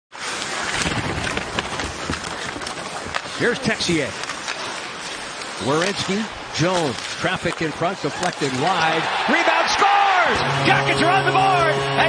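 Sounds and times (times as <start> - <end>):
sticks and skates clicking on ice: 0.2 - 10.1
arena crowd noise: 5.7 - 12.0.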